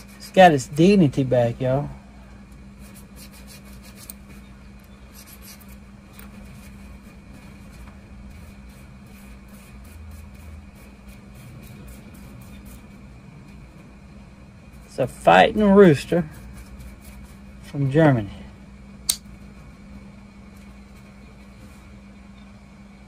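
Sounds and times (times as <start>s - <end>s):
brush scratching on metal: 0.0s - 0.6s, 2.8s - 13.1s, 14.8s - 17.7s
steady low hum: 0.0s - 23.0s.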